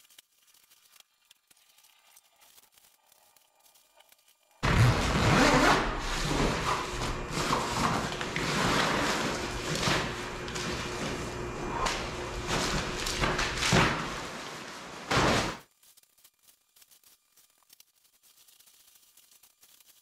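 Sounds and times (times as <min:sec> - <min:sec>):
duffel bag rustling and dragging: 0:04.6 - 0:15.6
plastic tarp crinkling: 0:04.6 - 0:20.0.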